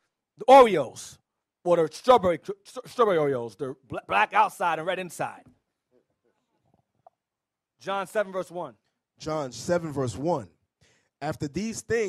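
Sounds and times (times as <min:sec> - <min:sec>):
man speaking into a microphone: 0:00.4 - 0:05.5, 0:07.8 - 0:12.0.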